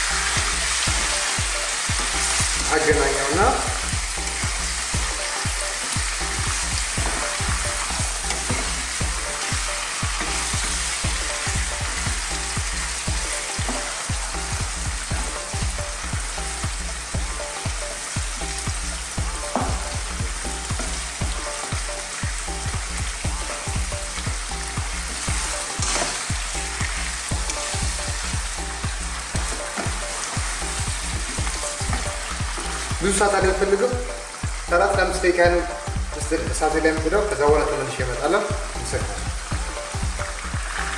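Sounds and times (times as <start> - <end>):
chicken sizzling in hot oil: 0.0 - 40.9.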